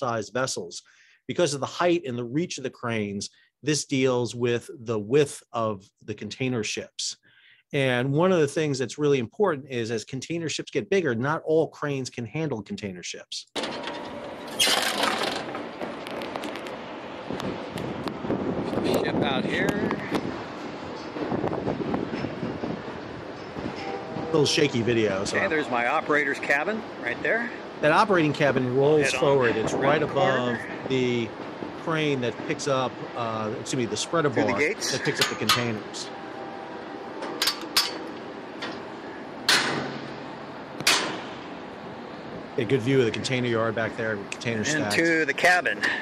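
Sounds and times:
rumbling outdoor noise: 0:13.6 - 0:46.0.

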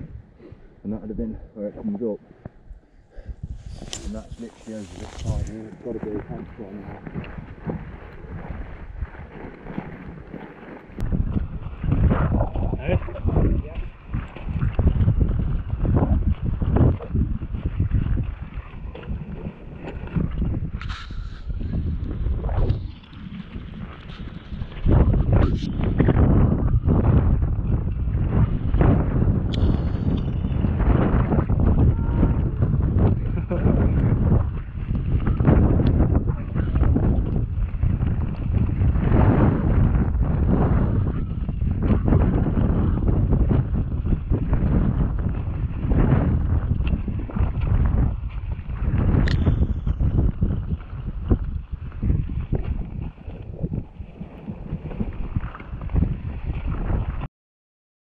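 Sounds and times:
wind buffeting microphone: 0:00.0 - 0:57.3.

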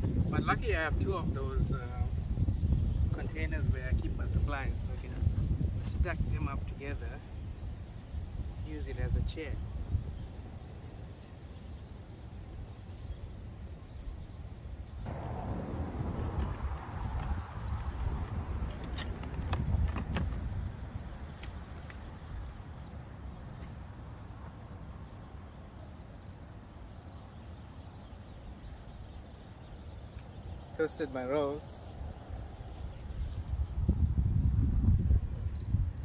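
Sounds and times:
wind rumble on microphone: 0:00.0 - 0:36.0.

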